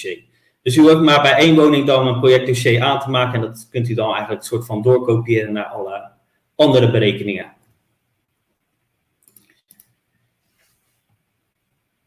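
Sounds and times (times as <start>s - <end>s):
faint quick clicks: 9.2s - 10.0s.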